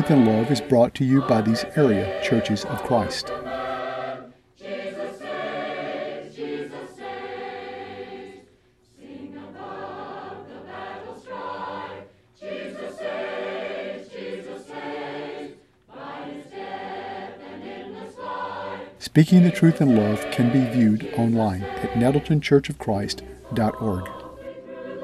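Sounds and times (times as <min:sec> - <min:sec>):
choir singing: 0:00.0 - 0:25.0.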